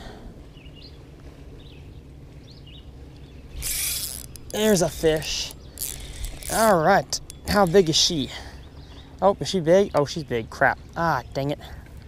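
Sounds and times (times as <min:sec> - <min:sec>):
fishing reel whirring: 0:03.6 - 0:08.2.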